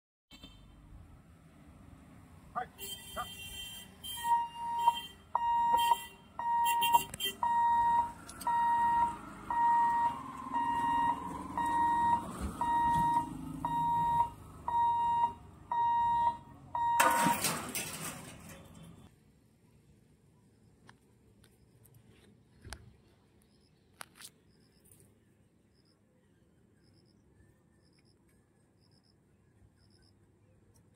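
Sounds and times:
level crossing alarm beeping: 0:04.2 - 0:18.0.

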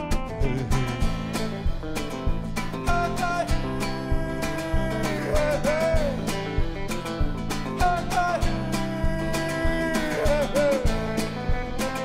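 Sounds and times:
live band playing: 0:00.0 - 0:12.0
strummed acoustic guitar: 0:00.0 - 0:12.0.

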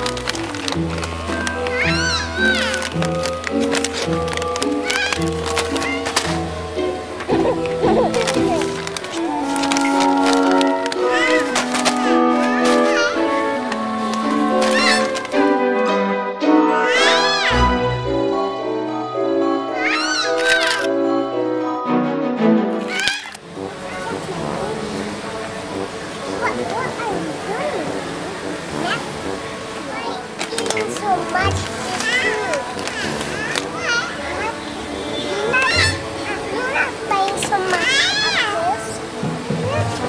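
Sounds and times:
light background music: 0:00.0 - 0:40.0
girl exclaiming and chattering: 0:07.3 - 0:08.8.

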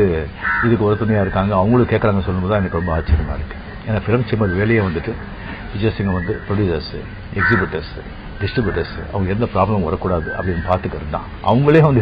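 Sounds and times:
man speaking garbled phrases: 0:00.0 - 0:12.0.

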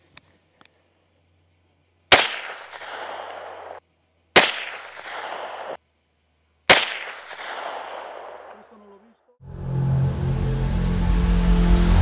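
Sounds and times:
gunshots with long echo: 0:02.1 - 0:03.8, 0:04.4 - 0:05.8, 0:06.7 - 0:08.7.

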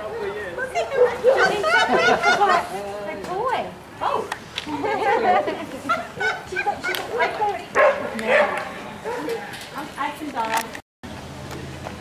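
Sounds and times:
people's voices: 0:00.0 - 0:10.8
dogs barking and yipping: 0:06.1 - 0:09.6.

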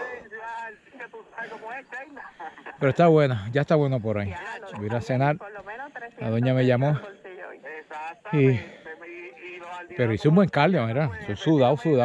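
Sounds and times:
person talking: 0:06.2 - 0:08.9.

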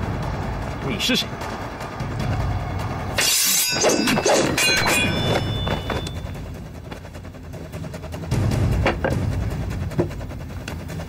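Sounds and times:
high ringing tones: 0:03.2 - 0:06.6.

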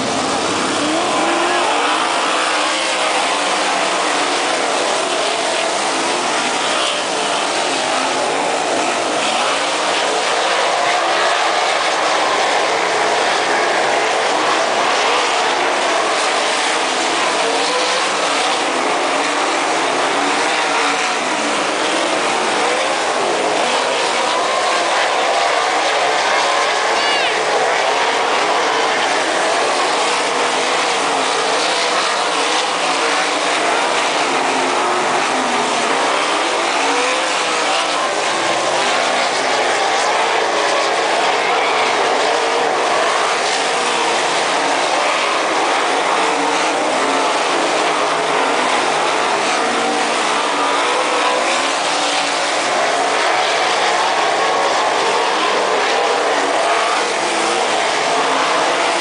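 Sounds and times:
racing car engines revving: 0:00.0 - 0:59.0.

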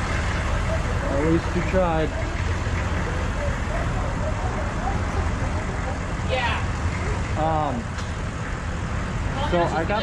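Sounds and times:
engine idling: 0:00.0 - 0:10.0
faint voices: 0:00.1 - 0:08.0.

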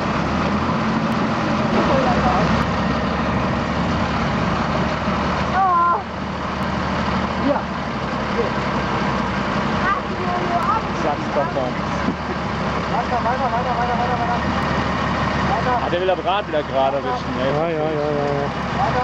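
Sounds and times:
diesel truck engine droning: 0:00.0 - 0:19.0
person shouting: 0:05.5 - 0:06.1.

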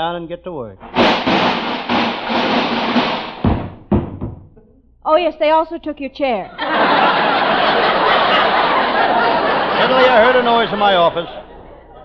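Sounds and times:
clattering crash: 0:00.8 - 0:04.2
heavy thuds: 0:00.8 - 0:04.6.

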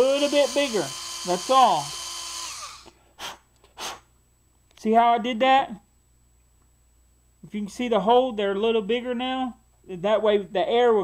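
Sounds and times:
small electric drill whining: 0:00.0 - 0:02.9.

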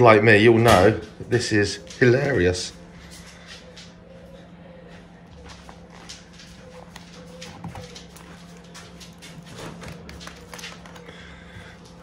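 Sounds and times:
steady low hum: 0:00.0 - 0:12.0
paper pages rustling: 0:05.6 - 0:11.3.

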